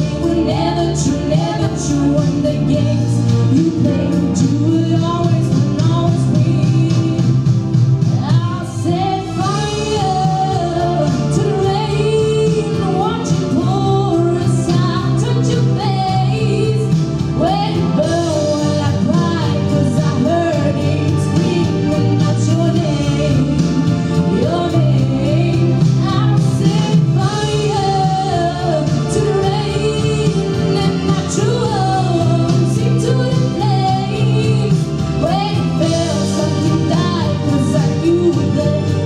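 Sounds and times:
instrumental accompaniment: 0:00.0 - 0:39.0
woman singing into a microphone: 0:00.0 - 0:39.0.

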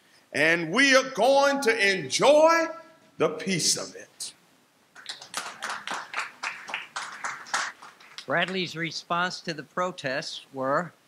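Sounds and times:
small audience clapping: 0:04.9 - 0:08.8.

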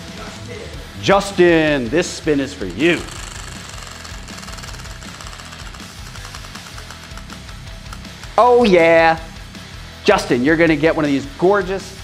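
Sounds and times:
prize wheel ticking: 0:02.6 - 0:09.0.

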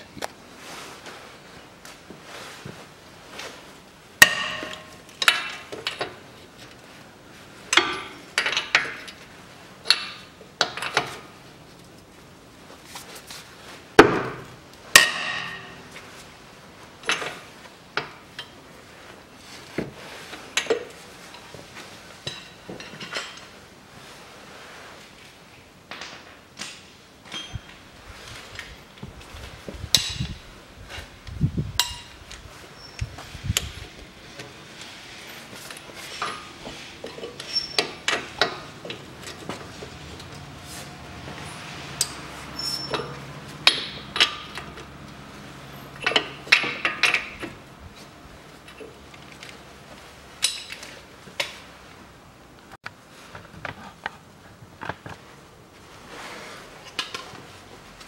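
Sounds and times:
metal tools clinking on bolts: 0:27.2 - 0:27.8, 0:35.7 - 0:40.4, 0:42.0 - 0:44.9, 0:50.4 - 0:51.6.

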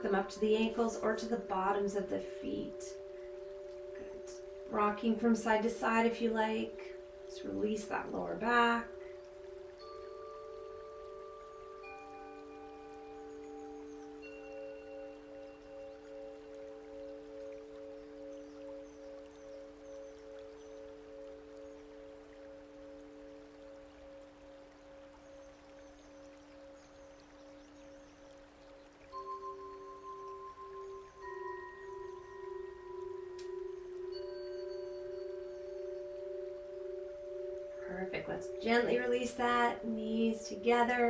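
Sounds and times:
bell-like tones: 0:00.0 - 0:41.0.

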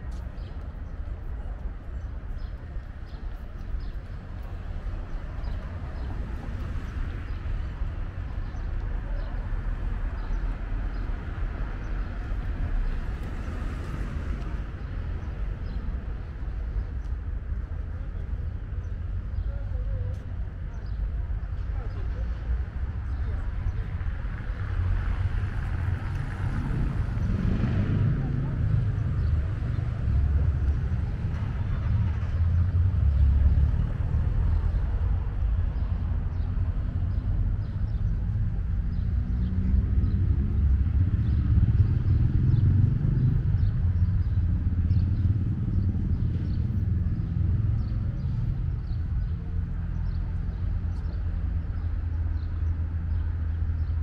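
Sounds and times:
traffic rumble: 0:00.0 - 0:54.0.

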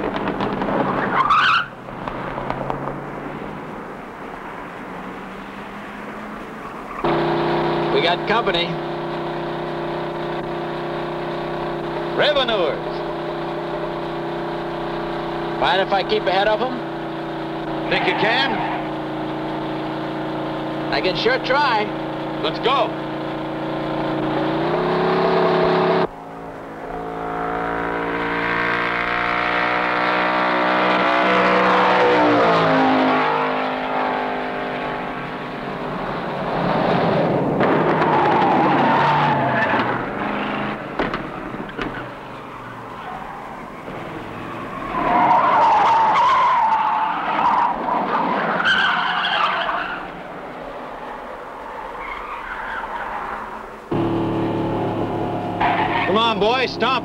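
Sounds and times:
car engine accelerating: 0:00.0 - 0:57.0
tyres squealing: 0:00.8 - 0:01.8, 0:17.6 - 0:25.2, 0:38.0 - 0:50.2, 0:55.4 - 0:57.0.

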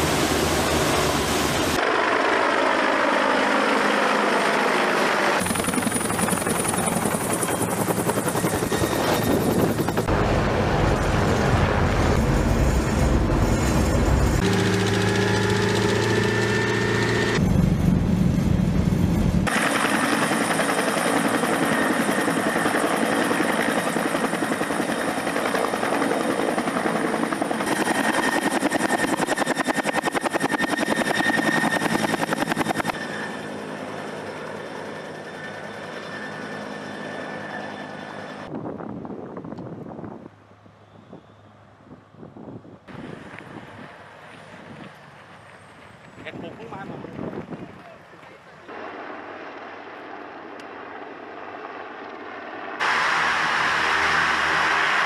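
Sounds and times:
military vehicle engines: 0:00.0 - 0:20.1
wind on microphone: 0:46.2 - 0:48.0.

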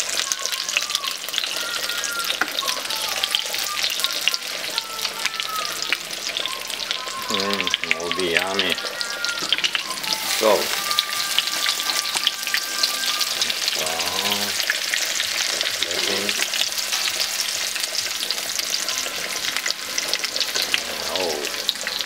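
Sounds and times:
cutlets sizzling in hot oil: 0:00.0 - 0:22.0.

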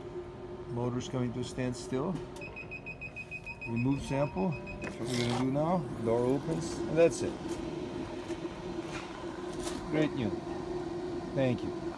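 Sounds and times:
low electrical hum: 0:00.0 - 0:11.9.

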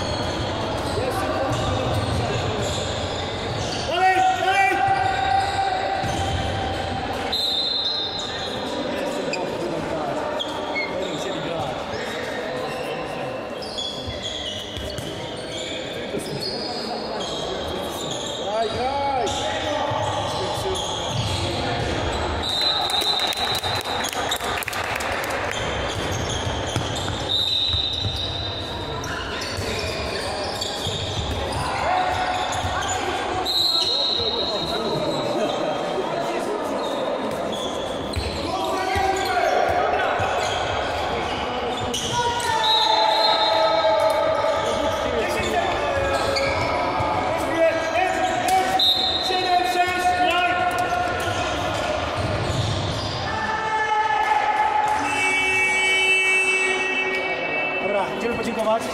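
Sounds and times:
players shouting in echoing hall: 0:00.0 - 0:58.9
ball bouncing on court: 0:06.0 - 0:06.8, 0:14.6 - 0:15.2, 0:25.5 - 0:28.4, 0:38.1 - 0:40.4, 0:50.8 - 0:53.2.

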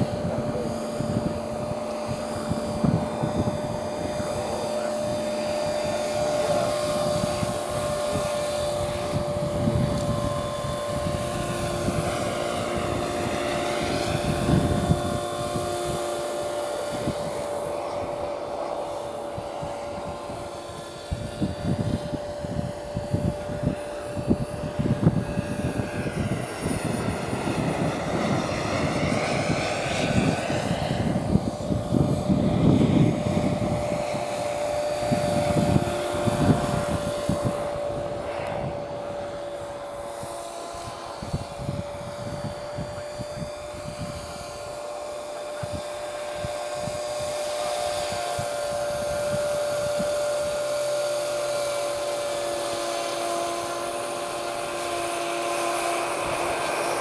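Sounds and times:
model helicopter motor whine: 0:00.0 - 0:57.0
wind buffeting microphone: 0:00.0 - 0:57.0.

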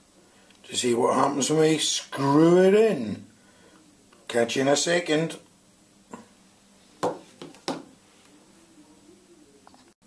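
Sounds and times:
sharp handling knocks: 0:07.0 - 0:07.9.

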